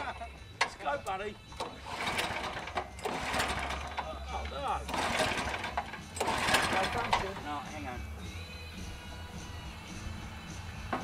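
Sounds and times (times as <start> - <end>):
tractor engine cranking: 0.0 - 9.0.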